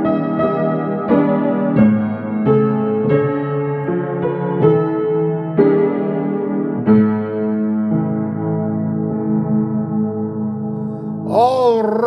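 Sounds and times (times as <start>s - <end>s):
piano chords ringing: 0.0s - 11.8s.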